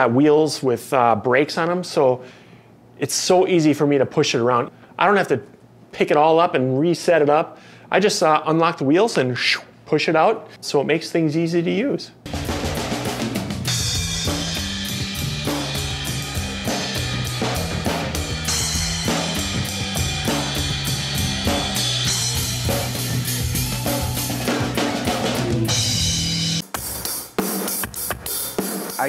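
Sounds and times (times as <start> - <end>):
low bass drum: 12.3 - 26.6
drum kit played fast: 12.3 - 29.0
held low bass line: 13.6 - 26.6.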